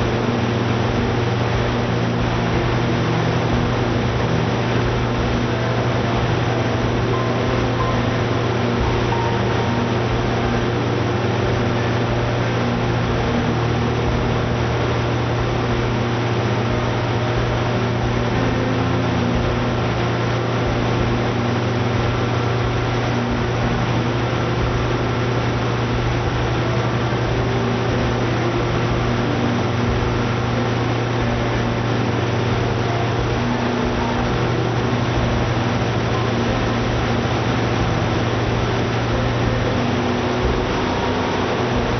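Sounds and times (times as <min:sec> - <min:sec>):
engine generator drone: 0:00.0 - 0:41.9.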